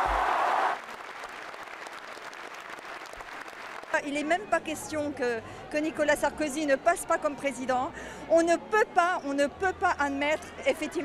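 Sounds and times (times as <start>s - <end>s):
crowd applauding: 0.0s - 4.3s.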